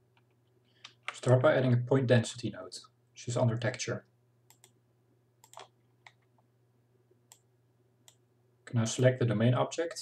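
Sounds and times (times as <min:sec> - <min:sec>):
computer mouse clicks: 0:04.5 - 0:04.8, 0:05.4 - 0:06.4, 0:07.3 - 0:08.2.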